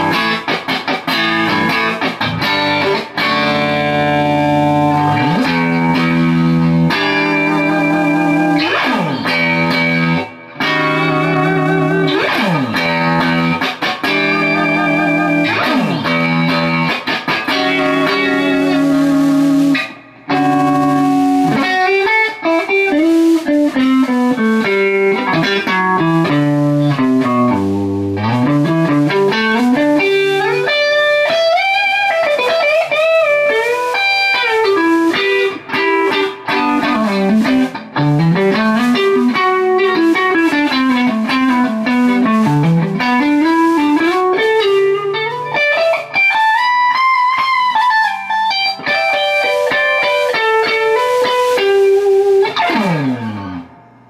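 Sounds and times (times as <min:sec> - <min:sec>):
clean electric guitar lead lines: 0:00.0 - 0:54.0.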